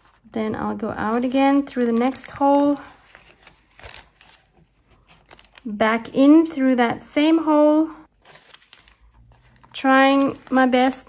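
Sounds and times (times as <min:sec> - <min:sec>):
paper rustling: 0:00.0 - 0:00.3, 0:01.0 - 0:05.7, 0:08.1 - 0:11.0
woman speaking: 0:00.3 - 0:02.9, 0:05.6 - 0:08.1, 0:09.8 - 0:11.0.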